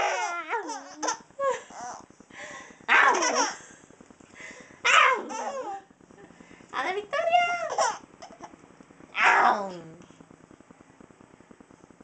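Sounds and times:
baby laughing: 0.0 - 2.0, 2.9 - 3.6, 5.1 - 5.9, 7.6 - 8.5.

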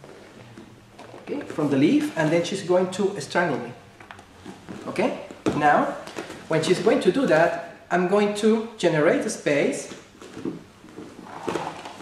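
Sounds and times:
uniforms rustling: 9.8 - 12.0
feet shuffling on a mat: 9.9 - 12.0.

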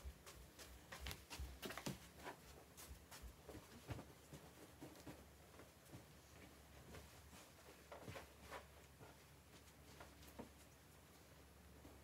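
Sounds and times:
faint footsteps: 0.0 - 10.8.

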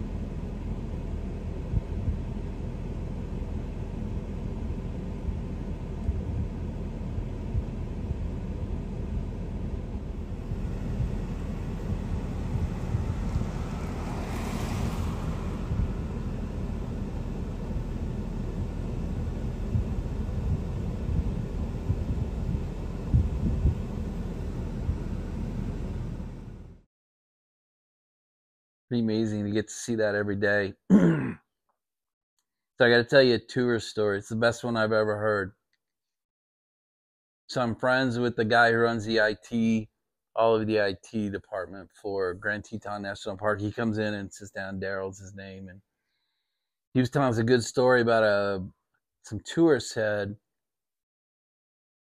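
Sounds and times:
vehicles idling: 0.0 - 26.6
wind rumble on microphone: 1.2 - 2.5, 4.0 - 26.7.

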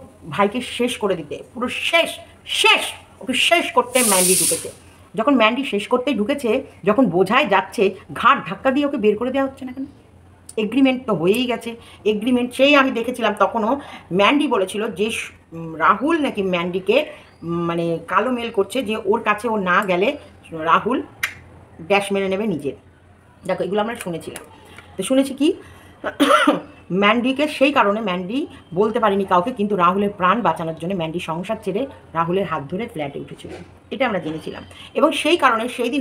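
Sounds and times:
woman speaking: 0.0 - 21.2, 21.8 - 36.0
drawn-out hissing sh sound: 3.8 - 4.9
sharp click: 21.2 - 21.4.

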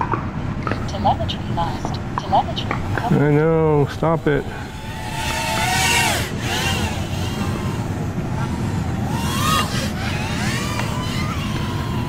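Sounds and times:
drone motors whining: 0.6 - 12.0.

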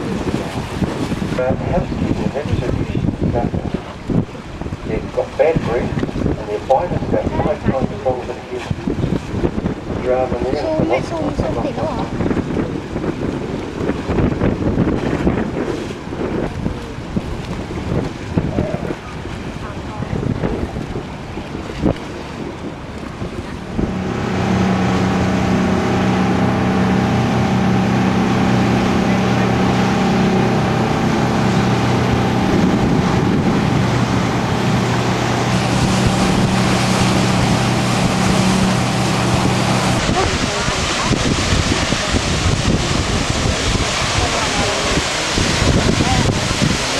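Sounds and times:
boat engine droning: 0.0 - 46.9
rush of wind and water: 0.0 - 46.9
wind buffeting microphone: 0.0 - 46.9.

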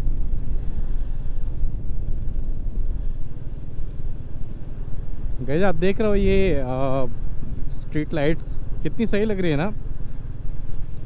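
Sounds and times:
motorcycle engine rumble: 0.0 - 11.0
wind rushing over camera: 0.0 - 11.0.

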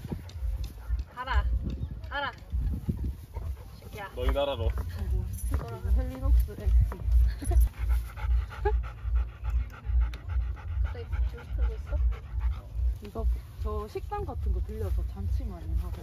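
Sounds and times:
dog panting: 2.4 - 16.0.

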